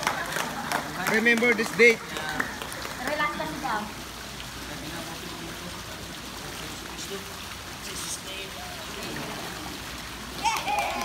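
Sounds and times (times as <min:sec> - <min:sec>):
pool water lapping: 0:00.0 - 0:11.0.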